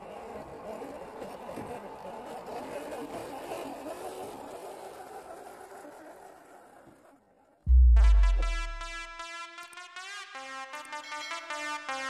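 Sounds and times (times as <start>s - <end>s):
toy car motor whirring: 0.0s - 7.6s.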